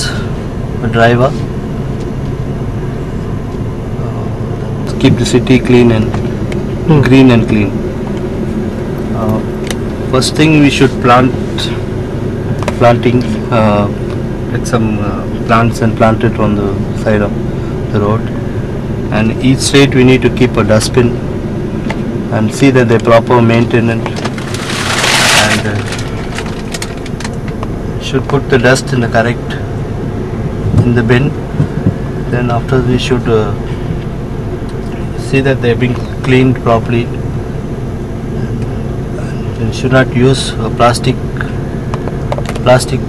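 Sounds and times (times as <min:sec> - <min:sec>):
car engine humming: 0:00.0 - 0:43.0.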